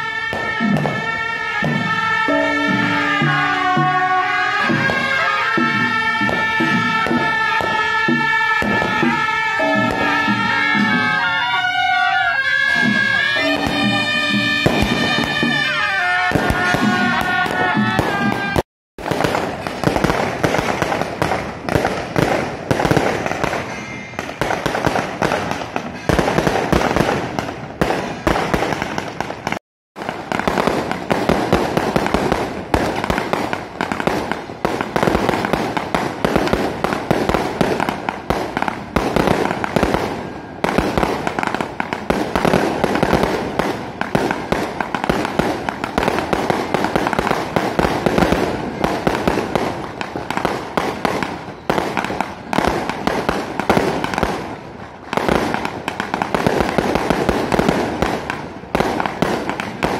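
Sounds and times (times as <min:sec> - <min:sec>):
fireworks bangs and crackles: 0:00.0 - 0:59.9.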